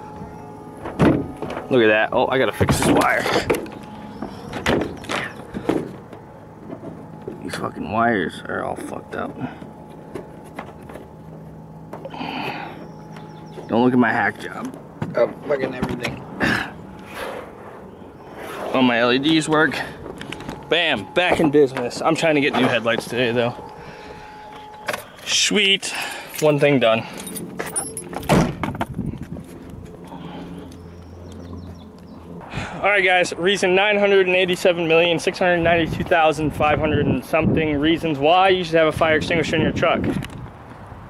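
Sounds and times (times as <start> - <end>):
truck engine humming: 0.0 - 39.3.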